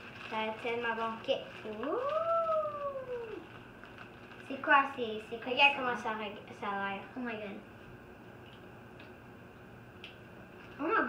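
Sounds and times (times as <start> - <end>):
boy's wordless oooh: 1.8 - 3.5.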